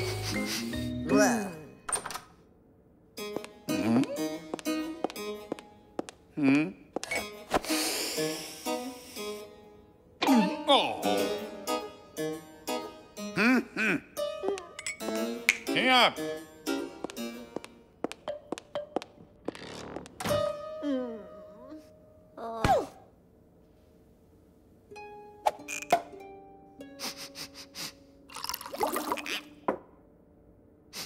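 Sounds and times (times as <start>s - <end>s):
cartoon sniffs: 7.6s - 9.3s.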